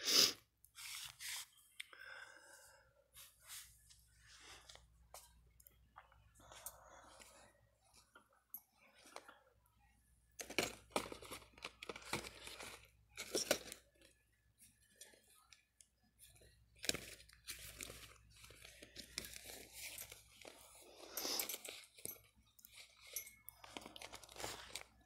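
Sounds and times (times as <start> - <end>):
plastic packaging crinkling: 22.7 - 25.0.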